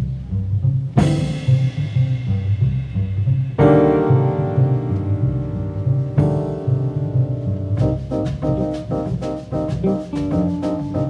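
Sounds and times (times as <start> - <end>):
upright double bass line: 0.0 - 11.0
piano chords: 0.9 - 11.0.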